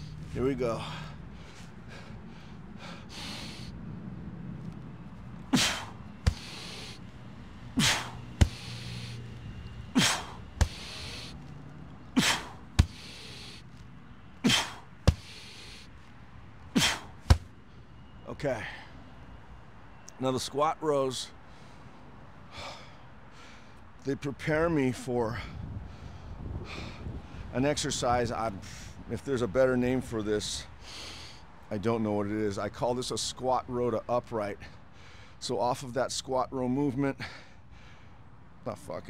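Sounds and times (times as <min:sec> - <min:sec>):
sandbag thud: 0:05.6 - 0:06.7, 0:07.8 - 0:09.0, 0:10.0 - 0:11.0, 0:12.2 - 0:13.1, 0:14.5 - 0:15.4, 0:16.8 - 0:17.5
man exhaling sharply: 0:05.6 - 0:07.0, 0:07.8 - 0:09.2, 0:10.0 - 0:11.4, 0:12.2 - 0:13.6, 0:14.4 - 0:15.9.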